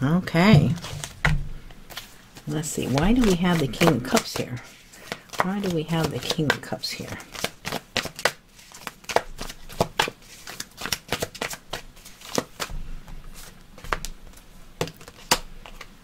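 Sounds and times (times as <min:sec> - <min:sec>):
cards being shuffled: 0:00.5 - 0:01.3, 0:01.9 - 0:12.7, 0:13.3 - 0:16.0.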